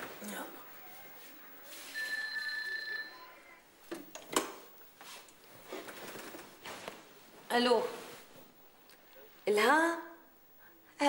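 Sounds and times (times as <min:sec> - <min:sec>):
telephone ringing: 0:01.8 - 0:03.6.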